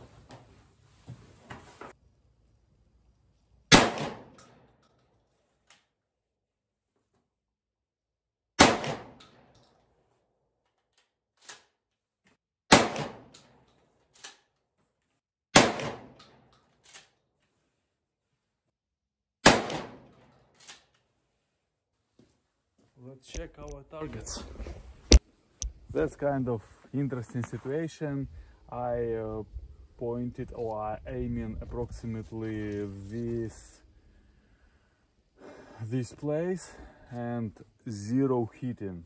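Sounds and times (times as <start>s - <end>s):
shotgun blasts: 3.7s - 4.7s, 8.6s - 9.5s, 12.7s - 13.6s, 15.5s - 16.4s, 19.4s - 20.3s.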